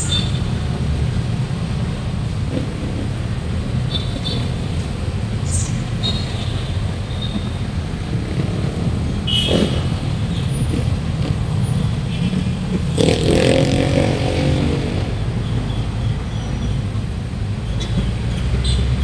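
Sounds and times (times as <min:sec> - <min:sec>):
traffic rumble: 0:00.0 - 0:19.0
loud vehicle passing: 0:07.9 - 0:16.0.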